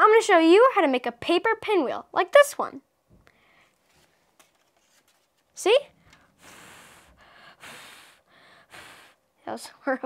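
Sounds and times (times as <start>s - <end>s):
boy blowing puffs of breath: 6.0s - 9.3s.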